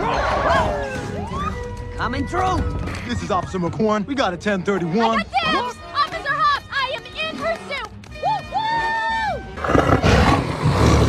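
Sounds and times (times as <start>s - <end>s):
jaguar roaring: 9.6s - 11.0s.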